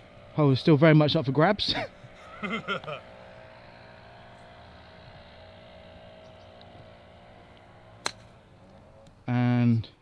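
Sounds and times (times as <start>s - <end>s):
faint mechanical hum: 0.0s - 10.0s.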